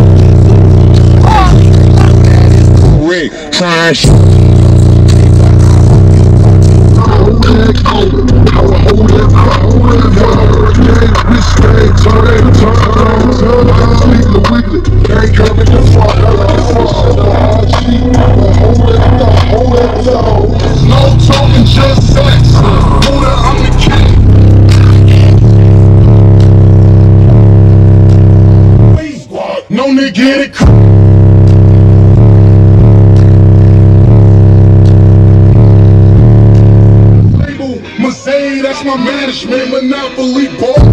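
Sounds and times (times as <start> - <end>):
bass-heavy music from subwoofers: 0.0 - 29.1, 30.3 - 40.9.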